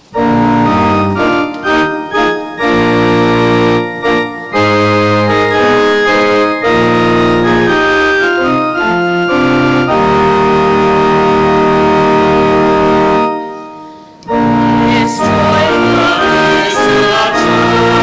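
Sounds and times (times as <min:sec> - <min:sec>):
church organ chords: 0:00.0 - 0:18.0.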